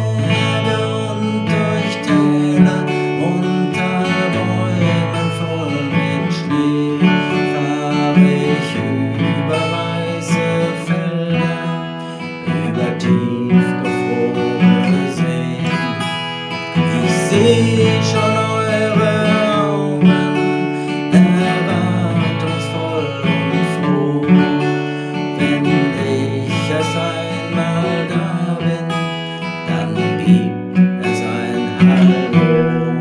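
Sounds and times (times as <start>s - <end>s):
acoustic guitar strumming: 0.0s - 33.0s.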